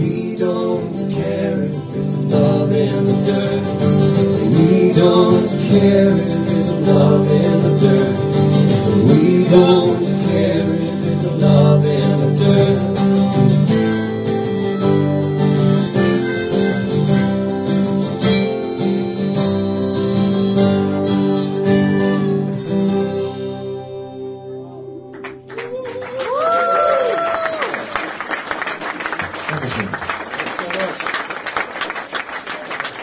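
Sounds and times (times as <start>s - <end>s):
acoustic guitars strummed: 0.0s - 25.5s
harmonica playing: 3.3s - 25.5s
audience applause: 25.1s - 33.0s
audience whoop: 25.5s - 28.4s.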